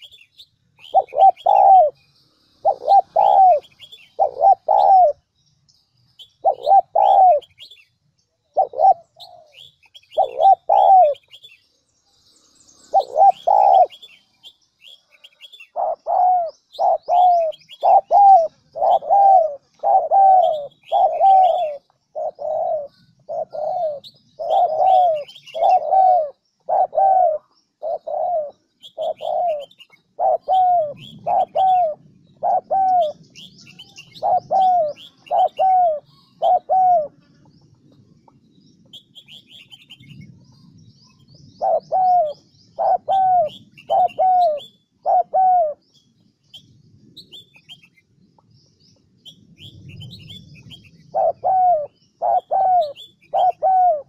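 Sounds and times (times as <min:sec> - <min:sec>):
small birds chirping: 0:00.0 - 0:54.0
dove cooing: 0:00.8 - 0:02.0, 0:02.6 - 0:05.2, 0:06.4 - 0:07.8, 0:08.5 - 0:11.4, 0:12.9 - 0:14.2, 0:15.3 - 0:37.3, 0:41.6 - 0:45.8, 0:49.8 - 0:54.0.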